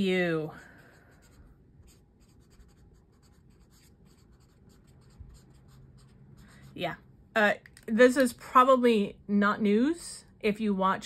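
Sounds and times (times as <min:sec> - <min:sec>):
pen scratching on paper: 0:00.9 - 0:06.8.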